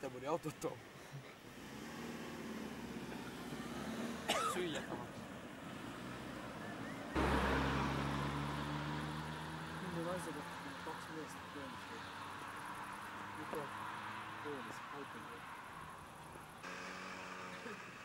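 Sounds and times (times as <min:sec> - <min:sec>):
car passing: 0:01.4 - 0:18.0.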